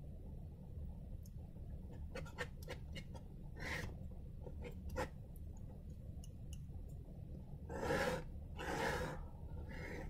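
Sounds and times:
person breathing: 7.7s - 10.0s.

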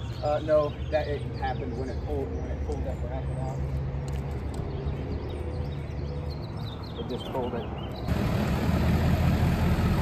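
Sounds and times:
small birds chirping: 0.0s - 8.2s.

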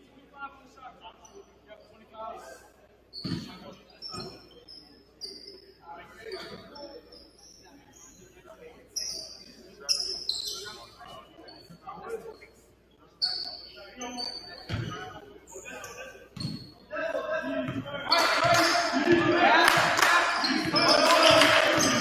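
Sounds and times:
sneaker squeaks: 3.1s - 16.9s, 17.6s - 22.0s.

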